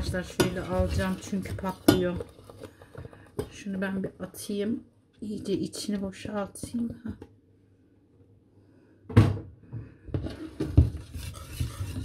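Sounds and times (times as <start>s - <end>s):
whisk scraping a metal pot: 0.0s - 2.6s, 10.2s - 12.0s.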